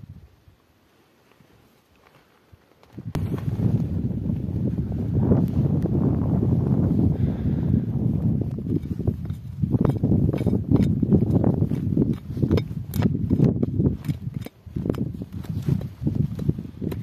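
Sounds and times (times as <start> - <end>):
wind rumbling on microphone: 0.0 - 0.6, 2.5 - 17.0
footsteps crunching in snow: 1.0 - 7.1, 8.0 - 17.0.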